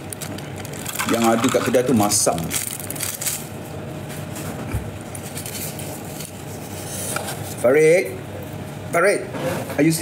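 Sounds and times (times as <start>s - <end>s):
steady background hum: 0.0s - 10.0s.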